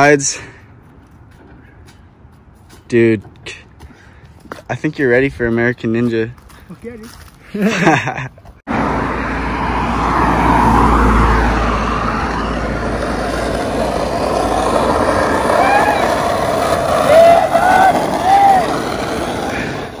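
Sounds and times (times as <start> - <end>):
skateboard wheels rolling on asphalt: 0.8 - 20.0
car driving by: 8.7 - 20.0.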